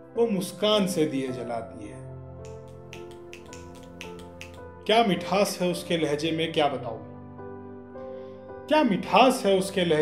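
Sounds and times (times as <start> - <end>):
soft background music: 0.0 - 10.0
audience finger snaps: 2.4 - 4.7.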